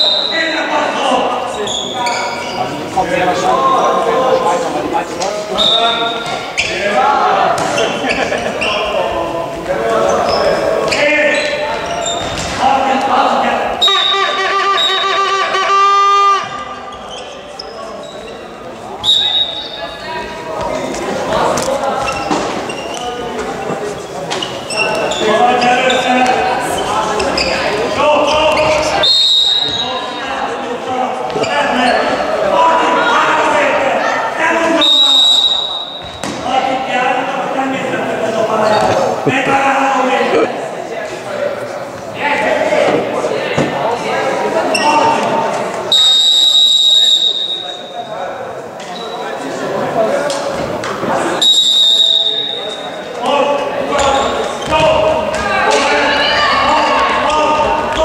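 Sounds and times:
referee's whistle blasts: 0.0s - 0.6s, 5.6s - 6.7s, 13.8s - 16.6s, 19.0s - 20.0s, 28.9s - 30.2s, 34.7s - 36.2s, 45.9s - 48.0s, 51.4s - 53.0s
players and spectators shouting: 0.0s - 17.5s, 51.3s - 58.0s
ball bouncing on hall floor: 35.9s - 36.5s, 53.9s - 56.0s.

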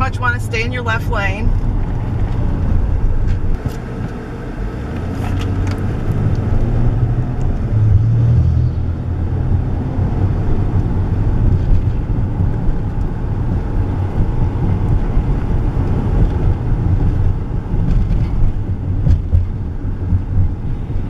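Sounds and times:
car engine and tyre rumble: 0.0s - 21.0s.

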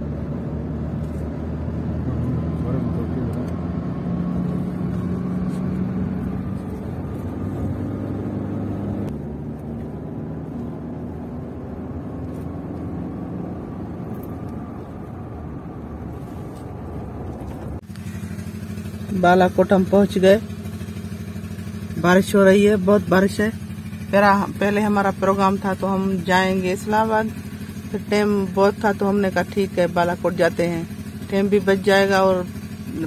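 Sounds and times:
low hum: 0.0s - 26.6s
road and engine drone inside car: 0.0s - 33.0s.

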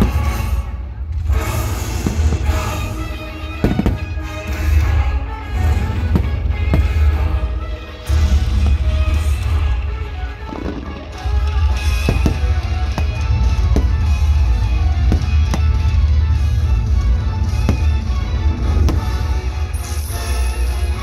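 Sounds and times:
firework shells bursting: 1.7s - 5.0s, 10.4s - 20.0s.

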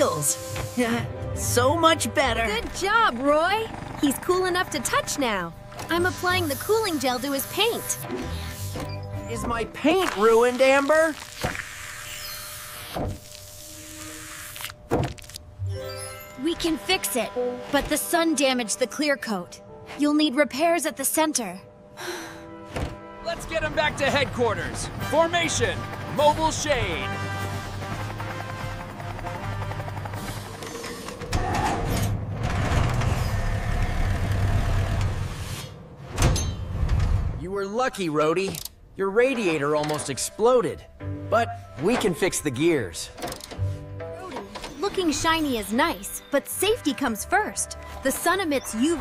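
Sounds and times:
soft background music: 0.0s - 11.4s, 12.8s - 31.4s, 36.7s - 49.0s
spray gun hissing: 12.7s - 14.6s.

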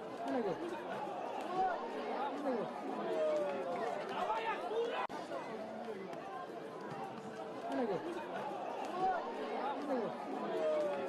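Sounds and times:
crowd calling and shouting: 0.0s - 11.0s.

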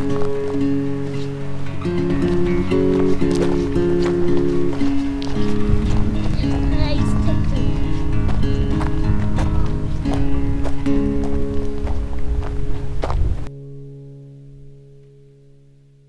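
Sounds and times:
sustained chord: 0.0s - 16.0s.

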